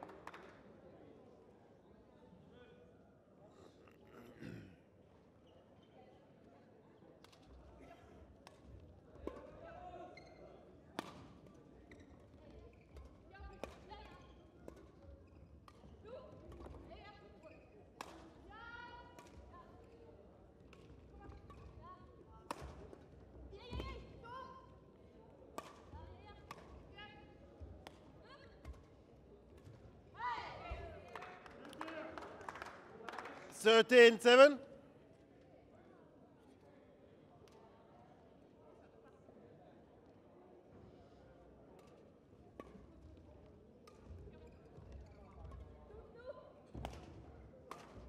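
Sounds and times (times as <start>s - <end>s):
voices calling: 33.6s - 34.6s.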